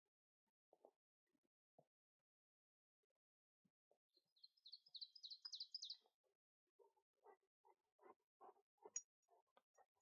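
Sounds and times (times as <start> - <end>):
songbird singing: 4.2 - 6.1.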